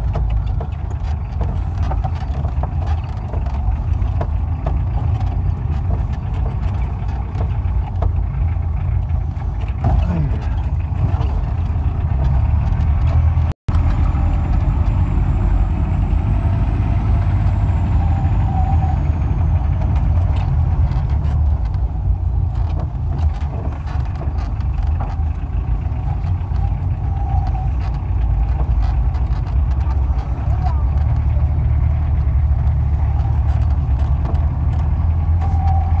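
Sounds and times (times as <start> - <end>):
jeep engine running: 0.0 - 36.0
tyres on dirt track: 0.0 - 36.0.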